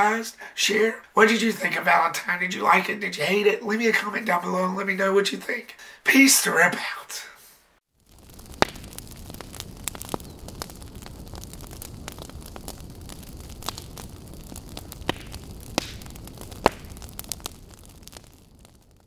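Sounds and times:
fire crackles and pops: 7.8 - 19.0
large fire rumbling: 7.9 - 19.0.

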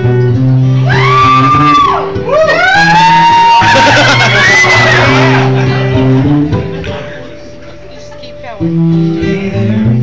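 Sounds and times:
acoustic guitar playing: 0.0 - 10.0
audience whooping: 0.8 - 6.3.

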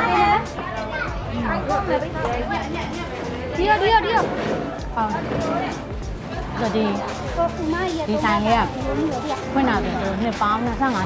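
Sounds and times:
people talking: 0.0 - 4.4, 6.4 - 11.0
background music: 0.0 - 11.0.

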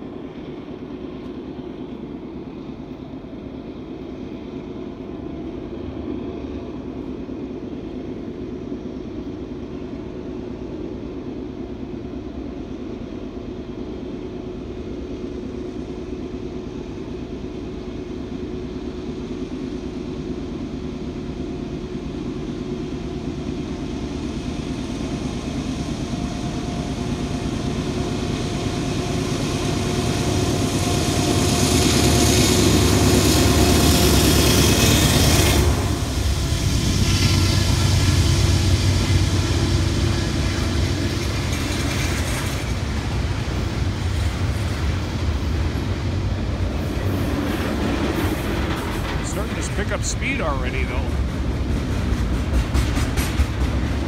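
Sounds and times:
diesel locomotive engine: 0.0 - 54.0
freight cars rumbling by: 32.6 - 54.0.

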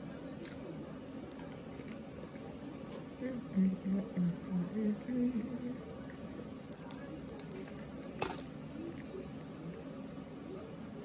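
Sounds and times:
chewing and crumbling: 0.2 - 3.2, 6.1 - 10.5.

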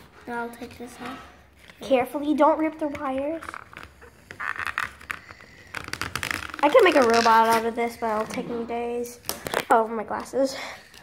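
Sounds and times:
greeting card crackling and scraping: 1.0 - 9.8.

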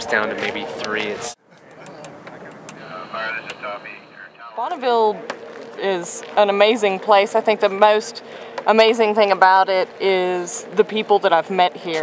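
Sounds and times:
distant people talking: 0.0 - 11.7.

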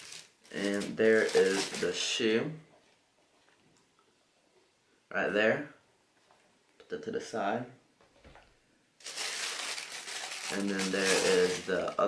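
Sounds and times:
tissue paper crinkling: 0.0 - 2.0, 9.0 - 12.0.

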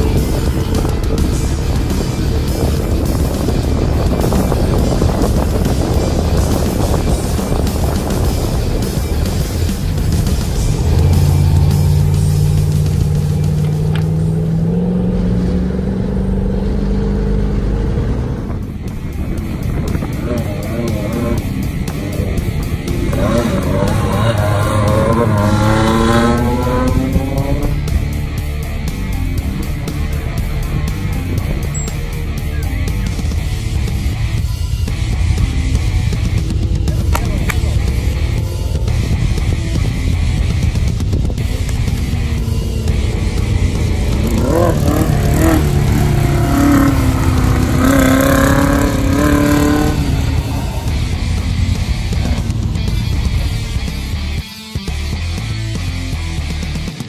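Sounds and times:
background music: 0.0 - 57.0
buggy engine passing at full throttle: 0.0 - 57.0.

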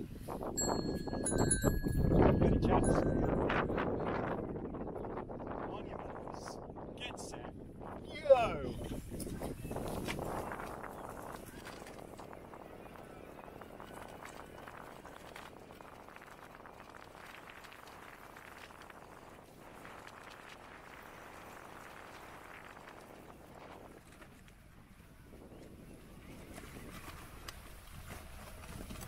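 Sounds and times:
bicycle tyres rumbling on dirt: 8.8 - 29.0
bike rattling over bumps: 25.4 - 29.0.

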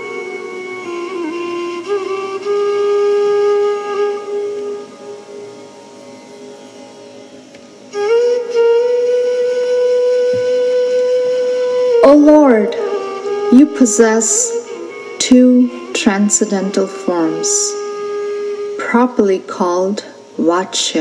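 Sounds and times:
flute playing long notes: 0.0 - 6.4, 7.9 - 19.4.

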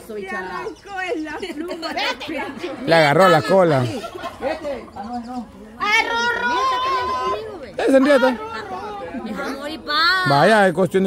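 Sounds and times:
excited people chattering: 0.0 - 11.0
high drawn-out cry: 5.7 - 10.3.

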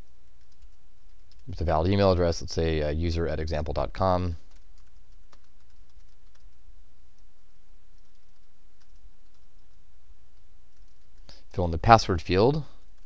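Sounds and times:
computer keyboard typing: 0.2 - 2.1, 4.4 - 11.3.

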